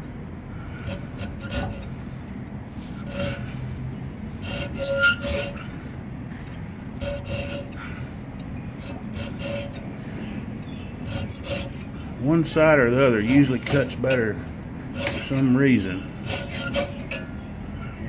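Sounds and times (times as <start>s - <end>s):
hand file rasping on metal: 0.8s - 2.1s, 2.8s - 5.8s, 7.0s - 8.1s, 8.8s - 10.0s, 10.9s - 12.1s, 13.1s - 17.4s.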